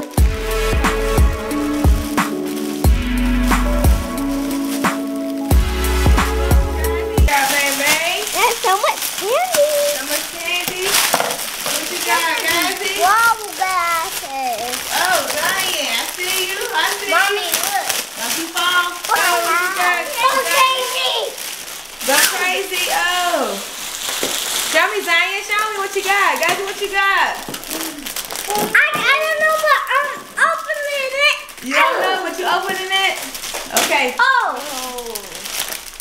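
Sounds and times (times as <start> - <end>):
cellophane crinkling and tearing: 0.0 - 36.0
children chattering: 6.3 - 11.1, 11.7 - 23.6, 27.6 - 33.3.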